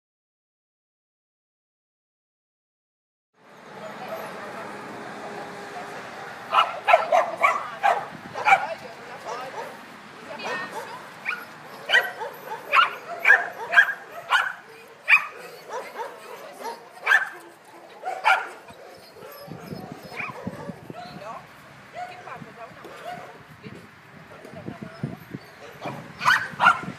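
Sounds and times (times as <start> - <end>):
dog barking: 6.5 - 9.8, 10.4 - 17.4, 18.0 - 21.2, 22.0 - 23.4, 25.6 - 26.9.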